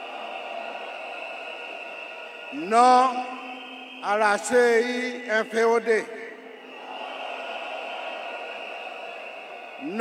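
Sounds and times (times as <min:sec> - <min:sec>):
stadium crowd cheering: 0:00.0 - 0:10.0.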